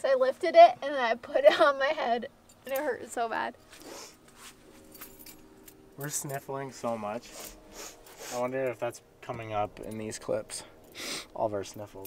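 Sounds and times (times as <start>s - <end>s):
faint steady hum: 0.0s - 12.0s
metallic jingling: 2.4s - 3.2s, 4.7s - 8.9s, 9.5s - 11.0s.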